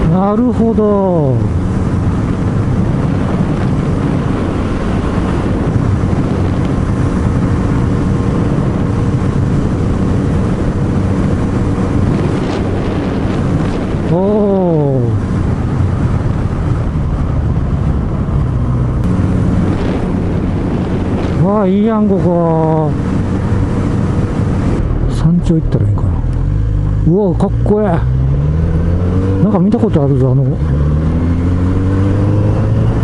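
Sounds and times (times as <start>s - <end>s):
wind noise on microphone: 0.0s - 33.0s
motorcycle engine running: 1.0s - 25.4s
rising and falling tone: 26.1s - 29.9s, 30.6s - 33.0s.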